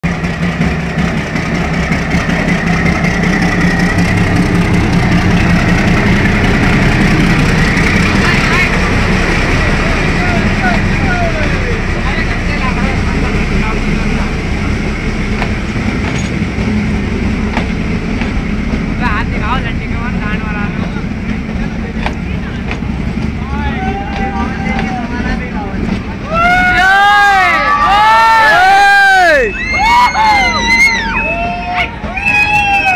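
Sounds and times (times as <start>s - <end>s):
coaches rumbling over rails: 0.0s - 32.9s
diesel locomotive engine: 0.0s - 32.9s
voices shouting: 6.1s - 12.0s, 23.4s - 25.6s, 26.2s - 32.9s.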